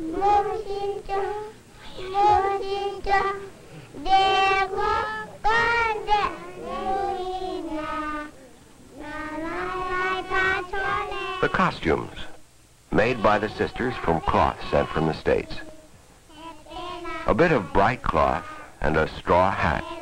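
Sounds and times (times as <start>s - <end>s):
children singing: 0.0s - 12.2s, 12.9s - 20.0s.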